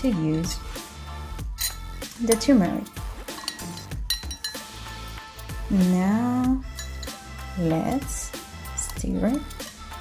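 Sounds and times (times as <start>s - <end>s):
teaspoon clinking against glass mug: 1.5s - 2.5s, 3.2s - 4.8s, 6.6s - 7.2s.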